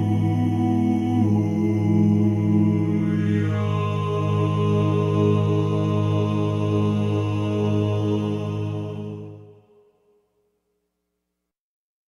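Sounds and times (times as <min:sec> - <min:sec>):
male vocal quartet held chord: 0:00.0 - 0:09.8.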